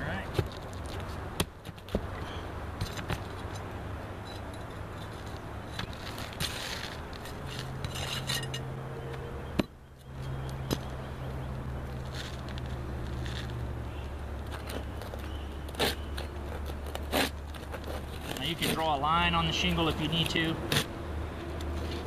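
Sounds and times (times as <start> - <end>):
pry bar scraping under shingles: 0.2 - 9.2, 14.5 - 22.0.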